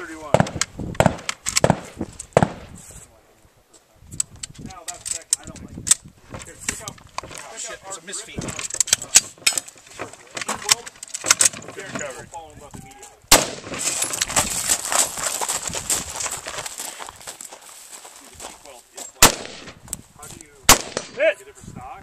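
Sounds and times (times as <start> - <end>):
rifle shots: 0.3 - 2.7, 13.3 - 14.0, 19.2 - 19.8, 20.7 - 21.3
rustling in grass: 13.8 - 19.2
footsteps through grass: 13.8 - 20.6.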